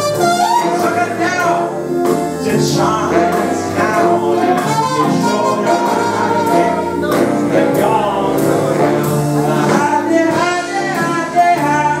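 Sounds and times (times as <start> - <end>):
big band swing music: 0.0 - 12.0
man singing into a microphone: 0.1 - 12.0.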